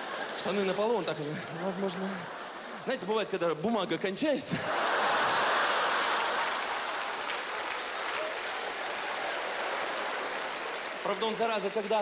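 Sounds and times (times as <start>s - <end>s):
audience laughing: 0.0s - 3.6s, 4.4s - 6.9s
audience applauding: 4.6s - 12.0s.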